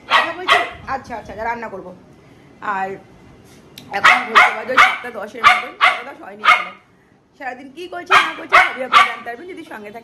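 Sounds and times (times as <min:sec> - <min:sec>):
dog barking: 0:00.0 - 0:00.8, 0:04.0 - 0:06.8, 0:08.1 - 0:09.3.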